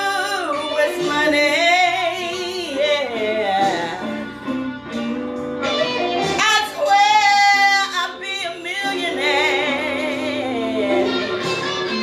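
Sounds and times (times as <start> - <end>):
woman singing blues: 0.0 - 4.8, 5.9 - 12.0
accompanying music: 0.0 - 12.0.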